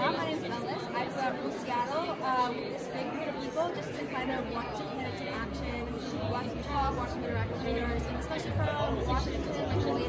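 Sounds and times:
background chatter of people: 0.0s - 10.0s
young woman talking: 0.0s - 10.0s.

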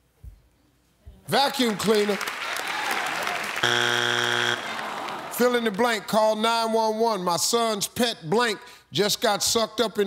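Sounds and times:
audience applause: 1.5s - 6.1s
wrong-answer buzzer: 3.6s - 4.8s.

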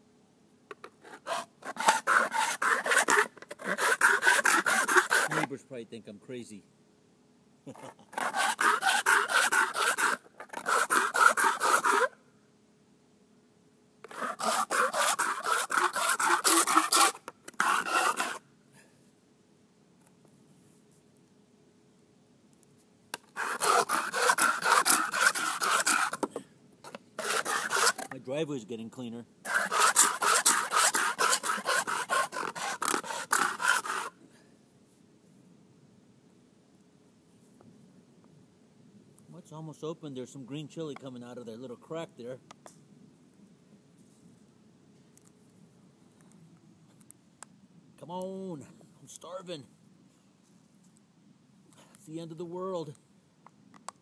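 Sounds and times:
metal can scraping on concrete: 14.1s - 18.4s, 29.5s - 34.1s.

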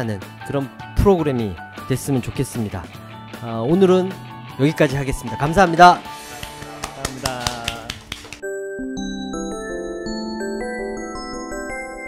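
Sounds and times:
background music: 0.0s - 12.0s
people clapping: 6.2s - 8.4s.

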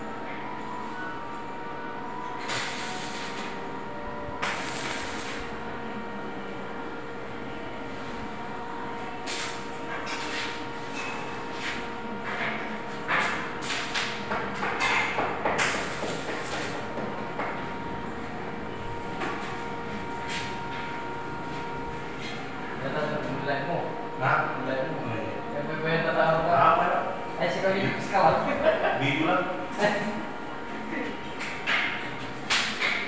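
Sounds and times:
steady background hum: 0.0s - 33.0s.

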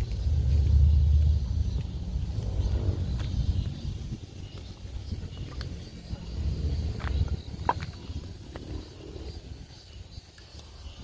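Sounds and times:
low fluctuating rumble: 0.0s - 9.8s.

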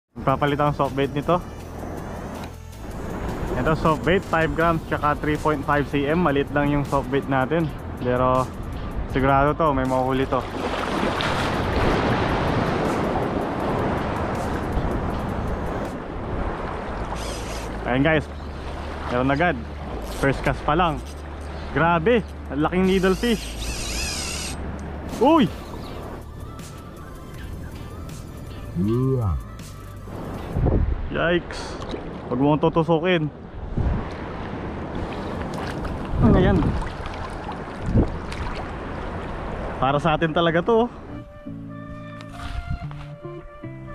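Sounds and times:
sea surf washing: 0.2s - 28.8s, 30.1s - 41.1s
water washing over rocks: 10.3s - 13.2s, 35.0s - 39.4s
wind noise on microphone: 10.5s - 19.0s, 30.1s - 31.2s, 33.5s - 39.8s, 41.9s - 43.9s
person exclaiming: 28.8s - 29.5s.

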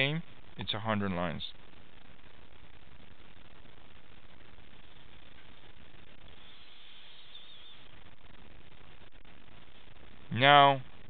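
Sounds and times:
microphone background hiss: 0.0s - 11.0s
faint high wavering whistle: 6.4s - 7.9s.

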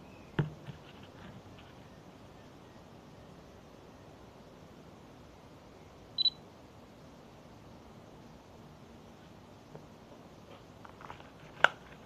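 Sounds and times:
faint background hiss: 0.0s - 12.0s
high electronic double beep: 6.2s - 6.4s.

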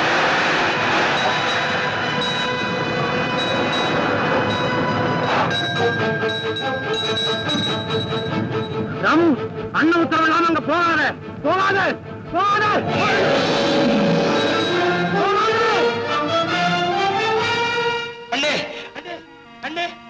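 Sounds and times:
noisy music under high chord: 0.1s - 20.0s.

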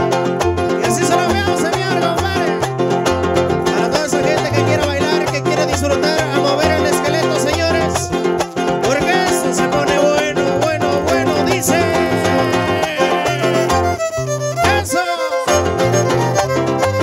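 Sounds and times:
bass line: 0.0s - 17.0s
fiddle melody: 0.0s - 17.0s
strummed guitars: 0.0s - 17.0s.

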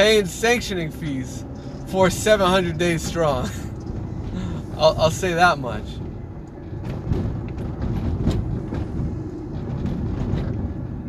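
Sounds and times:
low vehicle rumble: 0.0s - 11.0s.

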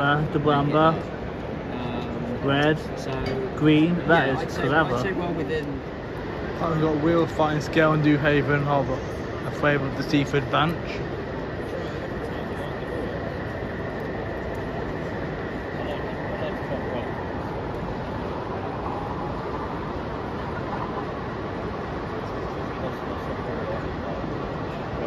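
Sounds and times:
murmur of crowd voices: 0.0s - 25.0s.

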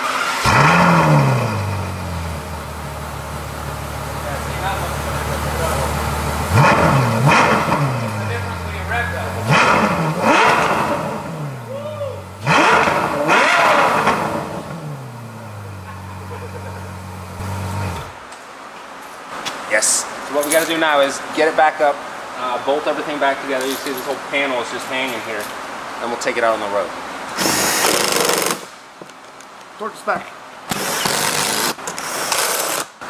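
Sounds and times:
sports car engine revving: 0.0s - 18.2s.

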